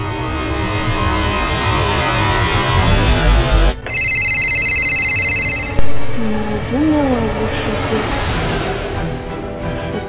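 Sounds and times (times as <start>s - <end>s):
mobile phone ringtone: 3.8s - 5.8s.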